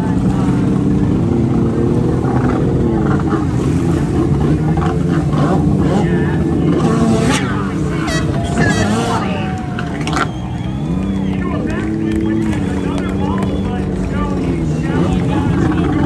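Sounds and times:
jet ski engine revving: 0:00.0 - 0:16.0
people shouting: 0:07.9 - 0:13.8.

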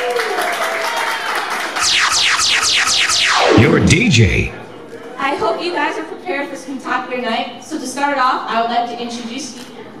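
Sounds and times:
music over loudspeakers: 0:01.8 - 0:04.6
falling electronic sweeps: 0:01.8 - 0:04.7.

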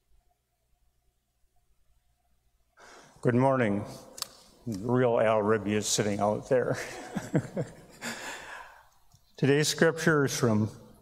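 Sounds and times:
breath into microphone: 0:02.8 - 0:03.2, 0:08.0 - 0:09.0
man speaking: 0:03.2 - 0:07.6, 0:09.3 - 0:11.0.

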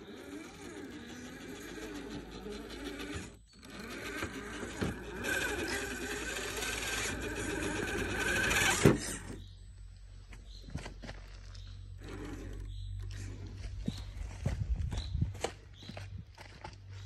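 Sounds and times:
electric motor and gearbox whining: 0:00.0 - 0:17.0.

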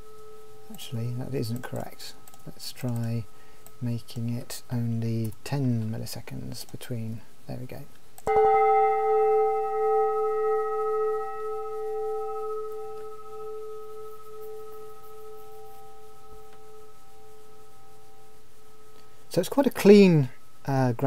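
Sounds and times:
quiet steady hum: 0:00.0 - 0:21.0
sustained tone with overtones: 0:08.3 - 0:19.2.

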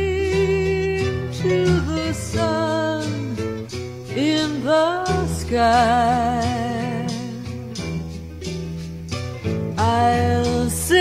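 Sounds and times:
woman singing with vibrato: 0:00.0 - 0:07.8, 0:09.8 - 0:11.0
acoustic guitar: 0:00.0 - 0:11.0.

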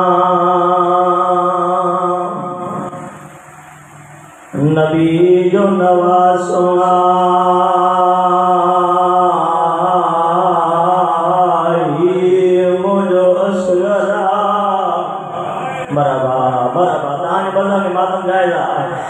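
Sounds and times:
man chanting amplified: 0:00.0 - 0:03.2, 0:04.5 - 0:19.0.

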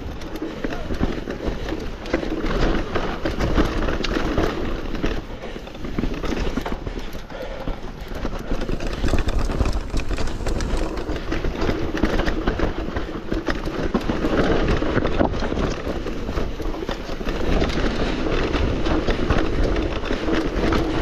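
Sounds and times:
bike chain and frame rattling: 0:00.0 - 0:21.0
tyres over stones and roots: 0:00.0 - 0:21.0.

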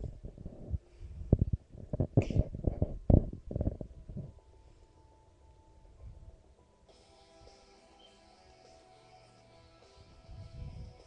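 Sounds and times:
microphone handling thumps: 0:00.0 - 0:04.4.

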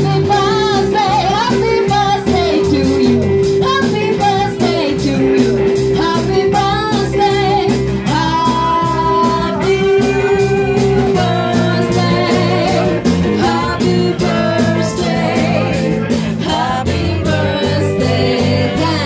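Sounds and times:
live band playing: 0:00.0 - 0:19.0
person singing: 0:00.0 - 0:19.0
steady drum beat: 0:00.0 - 0:19.0.

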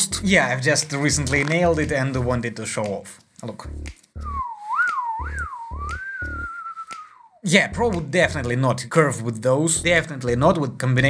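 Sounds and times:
low pulsing beat: 0:03.6 - 0:06.6, 0:07.7 - 0:08.6
whistled melody: 0:04.2 - 0:08.5.

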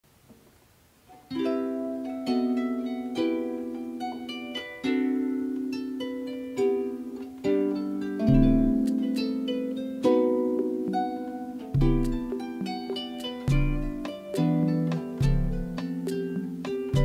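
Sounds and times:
harp chords plucked: 0:01.3 - 0:17.0.

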